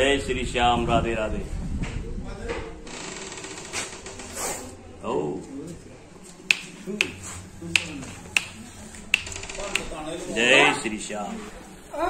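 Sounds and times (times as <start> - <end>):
sharp snapping clicks: 6.5 - 7.2, 7.8 - 10.0.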